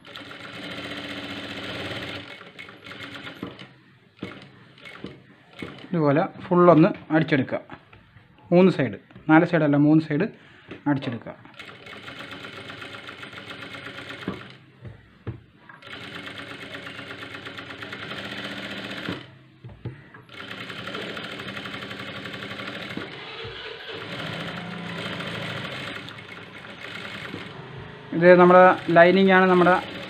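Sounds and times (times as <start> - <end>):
sewing machine stitching cloth: 0.0 - 5.9, 11.5 - 14.6, 15.8 - 19.4, 20.3 - 30.0.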